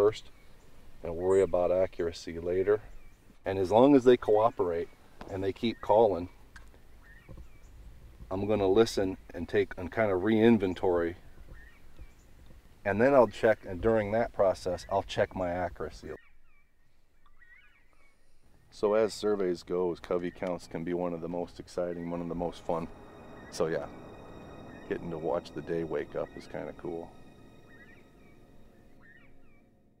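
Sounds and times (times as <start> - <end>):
low background noise: 0.0 - 29.8
faint bird chirping: 0.0 - 30.0
bird whistled calls: 11.5 - 12.3, 16.2 - 18.2, 21.8 - 29.7.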